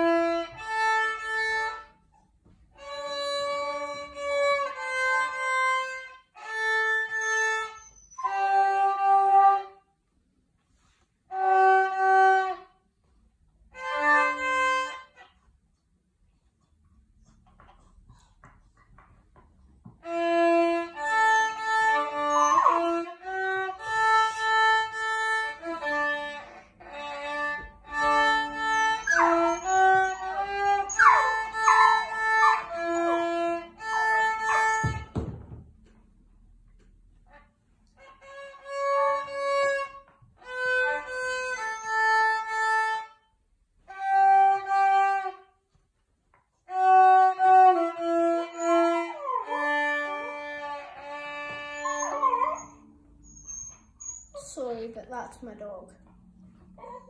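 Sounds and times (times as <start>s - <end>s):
violin playing lively tune: 0.0s - 1.9s, 2.8s - 7.7s, 20.0s - 35.0s, 38.0s - 43.1s, 46.7s - 51.8s
dog whining and yipping: 7.7s - 8.6s, 22.1s - 23.0s, 28.7s - 33.2s, 34.5s - 34.8s, 51.7s - 54.4s, 56.8s - 57.0s.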